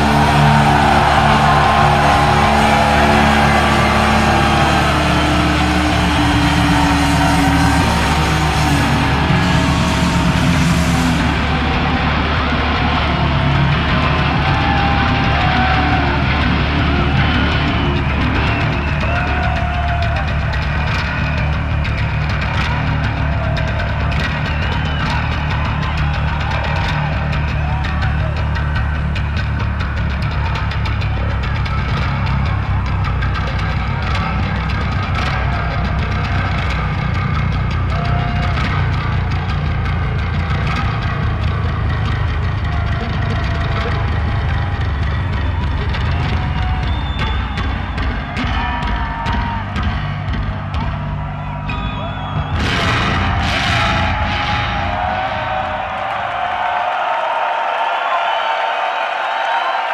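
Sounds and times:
electric bass playing: 0:00.0 - 0:56.2.

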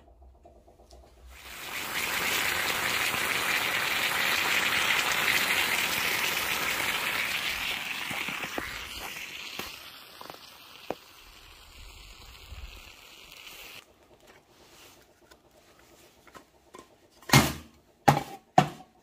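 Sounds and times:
hot metal hissing in snow: 0:01.4 - 0:13.8.

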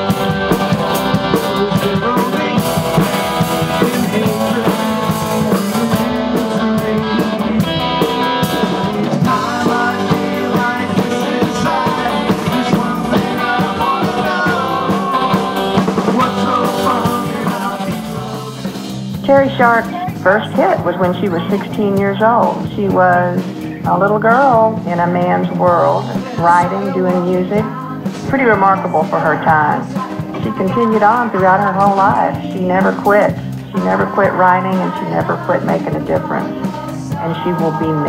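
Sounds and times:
drum kit: 0:00.0 - 0:38.0
electric guitars: 0:00.0 - 0:38.0.

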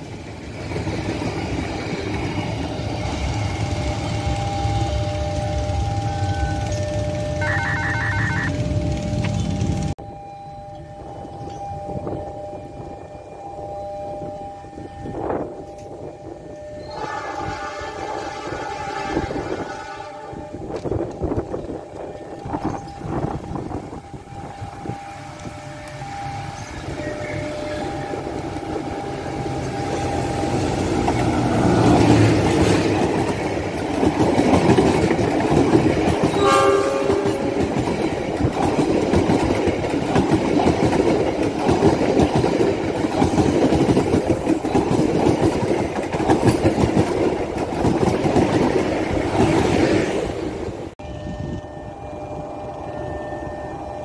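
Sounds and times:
passenger train passing: 0:00.0 - 0:54.0
train horn: 0:07.3 - 0:08.8, 0:16.8 - 0:20.8, 0:36.3 - 0:37.7.

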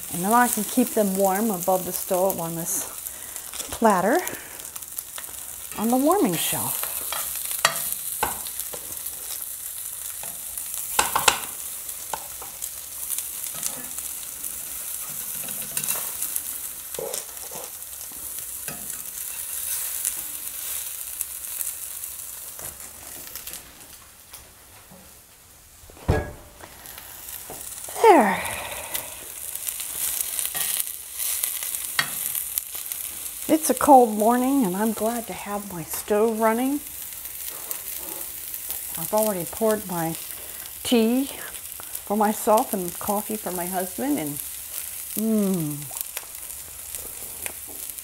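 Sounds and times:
sausages sizzling in a skillet: 0:00.0 - 0:25.8, 0:26.4 - 0:48.0
metal spatula scraping a pan: 0:14.9 - 0:16.2
loud knock: 0:26.1 - 0:26.6.

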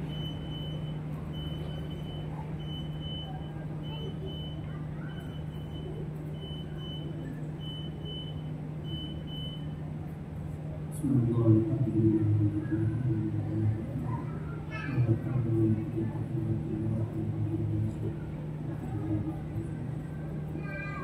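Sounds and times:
faint high beep: 0:00.0 - 0:09.8
low electrical hum: 0:00.0 - 0:21.0.

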